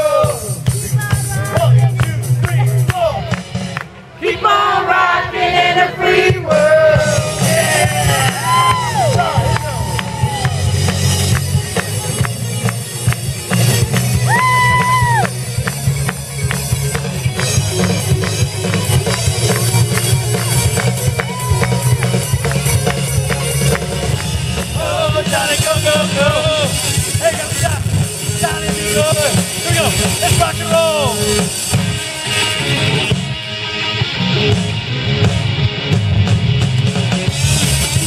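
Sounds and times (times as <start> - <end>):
rock band playing: 0.0 - 4.1, 6.1 - 38.0.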